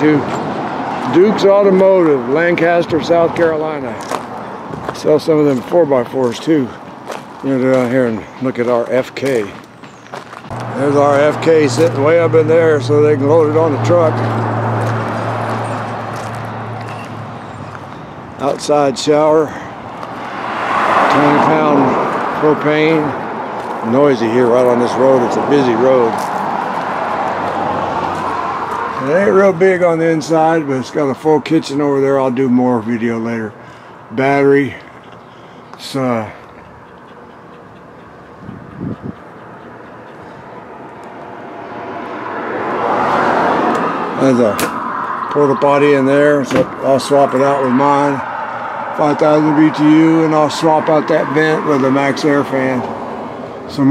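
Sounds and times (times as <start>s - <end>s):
road traffic: 0.0s - 53.9s
vehicle passing: 0.0s - 53.9s
low engine hum: 10.5s - 18.2s.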